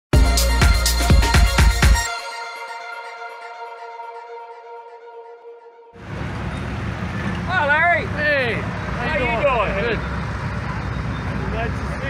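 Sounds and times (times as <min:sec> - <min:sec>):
people's voices: 0:07.4 - 0:12.0.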